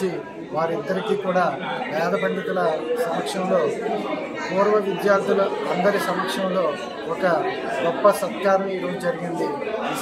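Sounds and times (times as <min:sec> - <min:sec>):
man talking in reverberant hall: 0:00.0 - 0:10.0.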